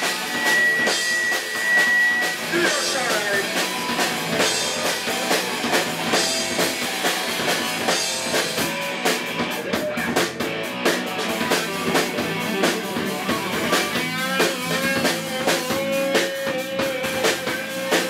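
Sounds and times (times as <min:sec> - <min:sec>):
drum kit pounding with cymbals: 0:00.0 - 0:18.0
electric guitar: 0:00.0 - 0:18.0.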